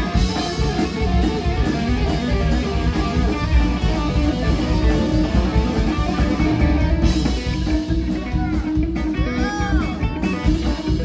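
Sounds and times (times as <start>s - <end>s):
bass guitar: 0.0s - 11.0s
drums: 0.0s - 11.0s
electric guitar: 0.0s - 11.0s
keyboard: 0.0s - 11.0s.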